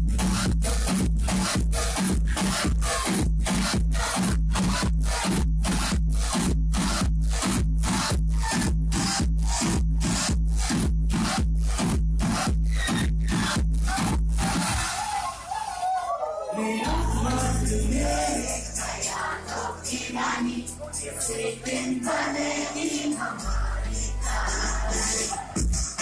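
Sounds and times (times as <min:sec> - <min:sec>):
electronic dance music: 0:00.0 - 0:26.0
deep sustained bass: 0:16.9 - 0:22.0.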